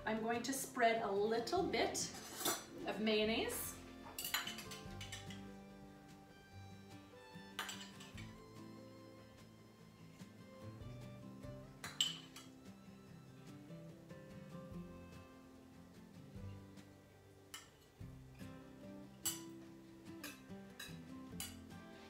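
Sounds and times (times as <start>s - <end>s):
soft background music: 0.0s - 22.0s
metal utensil clinking ceramic dish: 4.0s - 5.4s, 7.6s - 8.3s, 11.8s - 12.5s, 19.2s - 19.5s, 20.2s - 21.7s.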